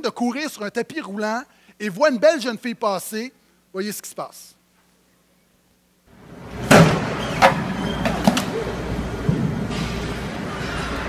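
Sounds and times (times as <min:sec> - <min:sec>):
gym background hum: 0:00.0 - 0:11.0.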